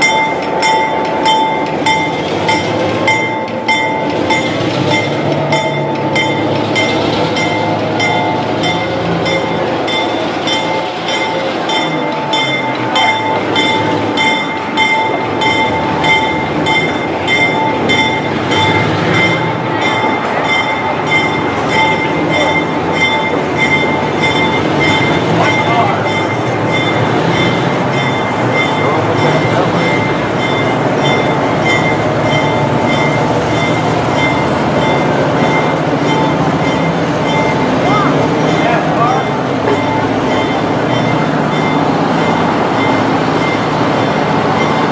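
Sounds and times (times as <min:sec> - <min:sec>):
people talking: 0:00.0 - 0:44.9
rapidly pulsing ringing: 0:00.0 - 0:44.9
train cars rumbling and rattling: 0:00.0 - 0:44.9.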